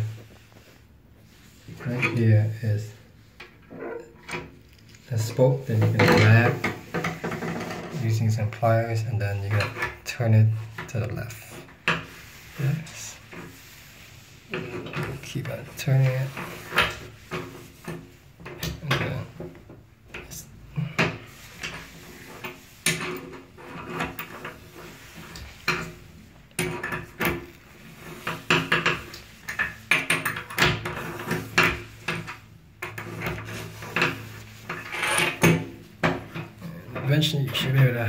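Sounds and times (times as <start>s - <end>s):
wrench scraping on metal drain stopper: 5.7s - 8.0s, 26.6s - 37.8s.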